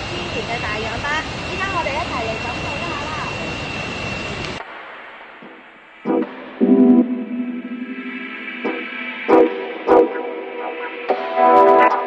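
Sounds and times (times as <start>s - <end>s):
high-pitched steady tone: 5.4s - 12.0s.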